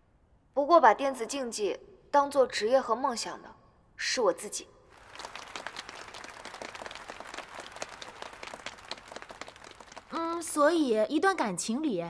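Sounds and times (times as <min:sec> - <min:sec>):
crowd applauding: 0:04.9 - 0:10.7.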